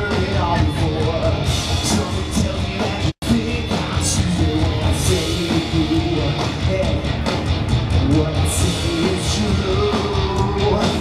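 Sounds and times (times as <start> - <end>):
drum kit: 0.0 - 11.0
electric guitars: 0.0 - 11.0.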